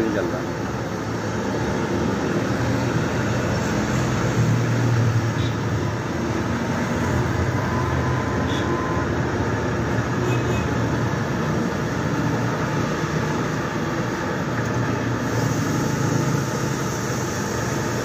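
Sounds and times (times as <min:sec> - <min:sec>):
gas torch burning: 0:11.0 - 0:18.0.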